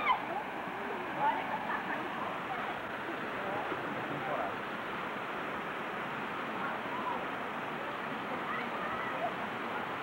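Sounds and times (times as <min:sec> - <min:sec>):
water rushing over rocks: 0:00.0 - 0:10.0
faint voices: 0:06.4 - 0:10.0.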